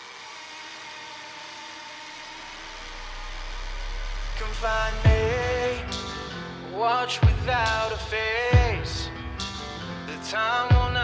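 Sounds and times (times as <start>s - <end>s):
deep bass note: 2.6s - 6.6s.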